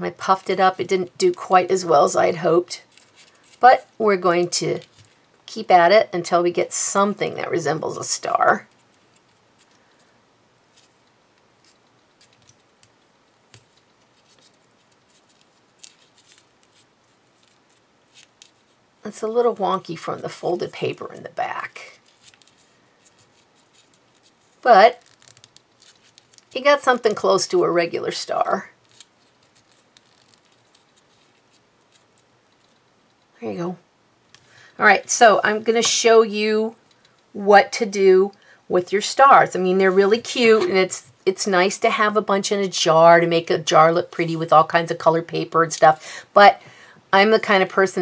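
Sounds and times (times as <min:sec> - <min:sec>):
paper crinkling and clicking: 0:10.7 - 0:18.7, 0:22.0 - 0:27.2, 0:28.8 - 0:33.3.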